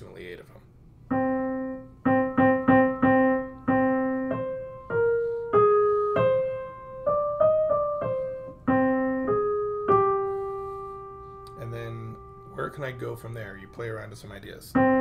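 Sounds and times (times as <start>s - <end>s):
piano melody: 1.1s - 15.0s.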